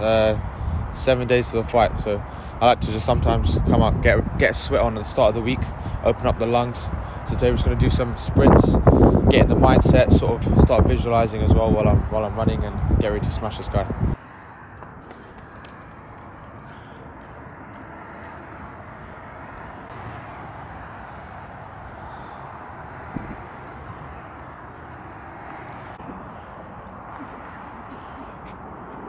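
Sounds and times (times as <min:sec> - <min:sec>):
distant jet airliner rumble: 0:00.0 - 0:29.0.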